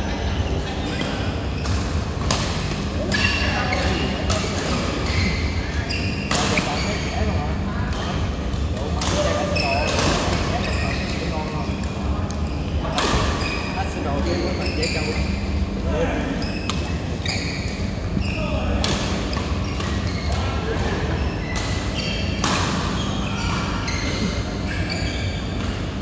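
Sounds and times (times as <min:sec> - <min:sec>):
shoes squeaking on court: 0:00.3 - 0:15.6, 0:16.3 - 0:26.0.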